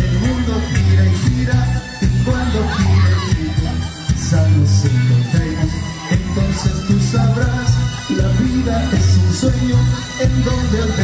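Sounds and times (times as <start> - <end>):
live band playing: 0.0 - 11.0.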